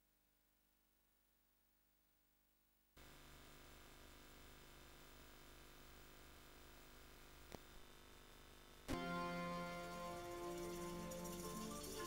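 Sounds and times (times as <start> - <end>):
faint steady hiss: 3.0 - 12.0.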